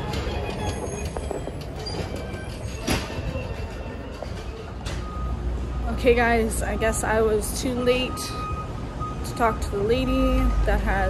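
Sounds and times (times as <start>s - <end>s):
clatter and knocks: 0.0s - 5.1s
low rumble of vehicles and machinery: 0.0s - 11.0s.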